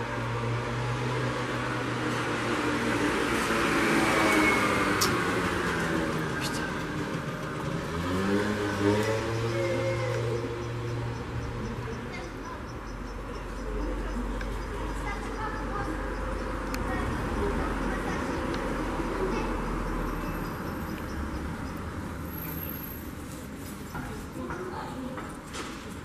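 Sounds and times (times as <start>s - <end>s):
vehicle passing: 0.1s - 24.4s
engine accelerating: 2.6s - 12.2s.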